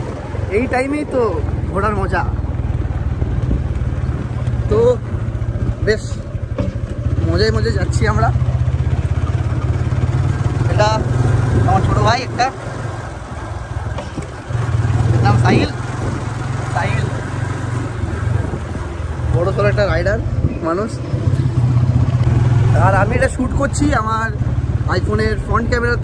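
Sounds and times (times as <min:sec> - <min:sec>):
motorcycle engine running: 0:00.0 - 0:26.0
wind rushing over microphone: 0:02.6 - 0:05.9, 0:10.7 - 0:22.7
voices: 0:03.6 - 0:26.0.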